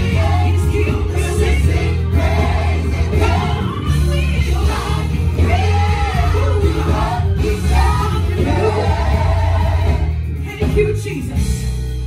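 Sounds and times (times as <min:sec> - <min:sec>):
gospel choir singing: 0:00.0 - 0:10.5
instrumental backing with bass: 0:00.0 - 0:12.0.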